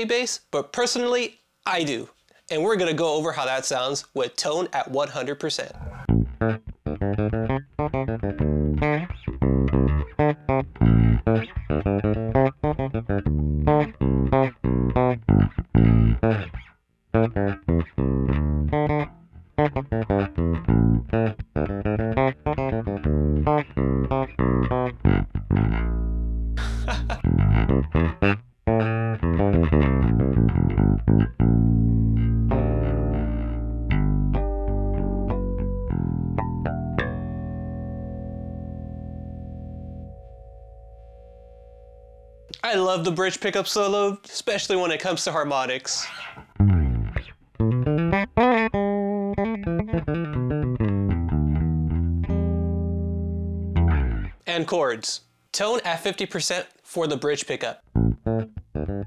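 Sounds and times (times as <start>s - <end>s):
bass guitar plucked notes: 5.8s - 42.6s, 46.3s - 54.5s, 57.8s - 59.0s.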